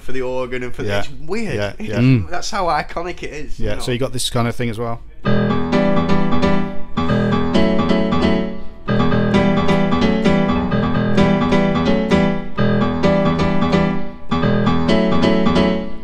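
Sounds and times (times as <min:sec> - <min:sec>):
keyboard piano chords: 0:05.2 - 0:16.0.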